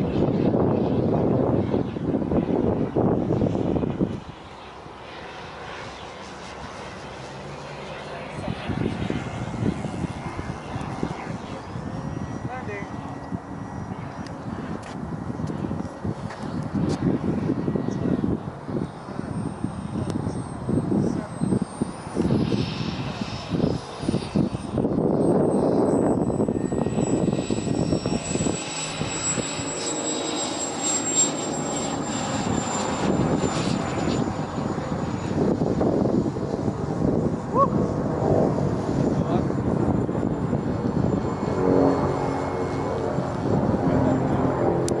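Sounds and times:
model jet turbine engine whine: 0.0s - 45.0s.

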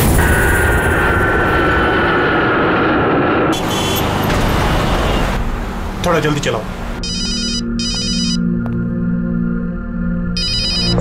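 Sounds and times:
low background music: 5.9s - 11.0s
telephone ringing with warbling trill: 10.4s - 11.0s.

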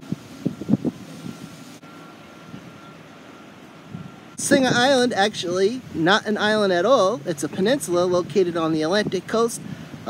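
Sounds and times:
outdoor background noise: 0.0s - 10.0s
faint high-pitched tone: 0.4s - 5.1s.

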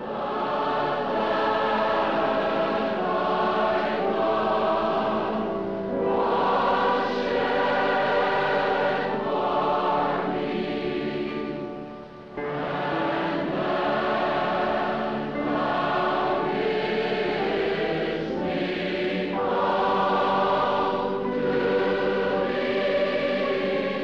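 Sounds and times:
choir singing a slow hymn: 0.0s - 24.0s.

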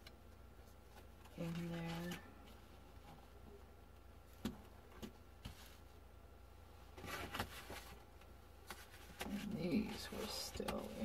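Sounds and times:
cards rustling: 8.6s - 11.0s.

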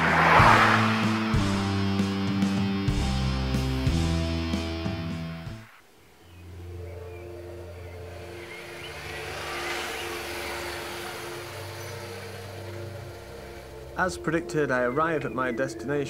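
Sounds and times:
car engine: 0.0s - 5.8s, 6.5s - 14.4s.

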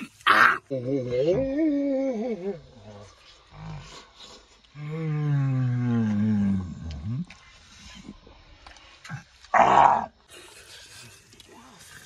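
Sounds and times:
animal-like growl: 4.7s - 7.4s, 9.1s - 10.2s.

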